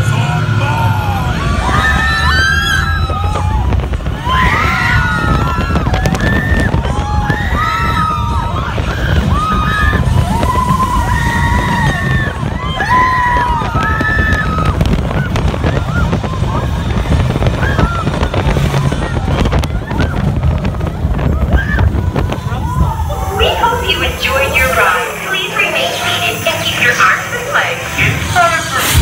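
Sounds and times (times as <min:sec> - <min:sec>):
roller coaster rumbling and clattering: 0:00.0 - 0:29.0
riders screaming: 0:00.2 - 0:25.2
high cries: 0:22.6 - 0:28.8.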